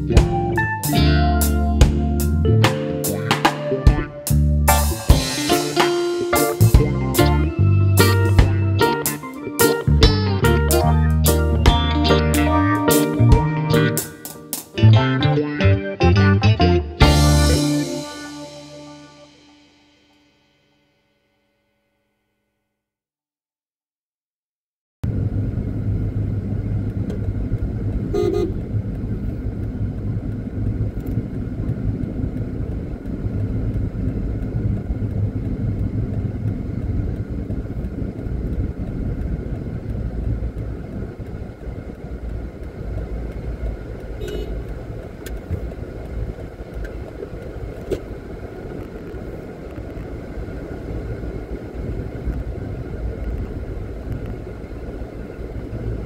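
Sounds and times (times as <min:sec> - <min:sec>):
car engine and road rumble: 0:00.0 - 0:15.2, 0:16.8 - 0:20.4, 0:25.0 - 0:56.0
car horn toot: 0:28.1 - 0:28.7, 0:44.2 - 0:44.8.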